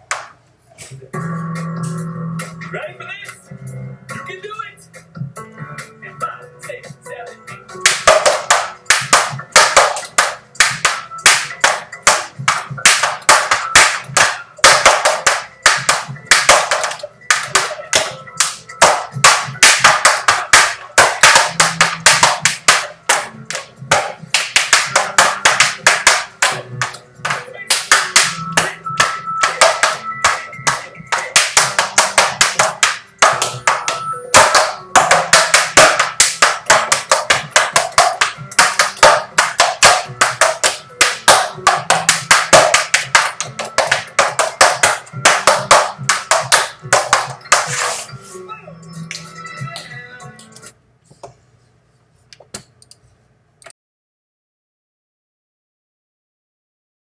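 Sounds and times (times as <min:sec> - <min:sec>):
tap shoes striking floor: 0:07.8 - 0:47.8.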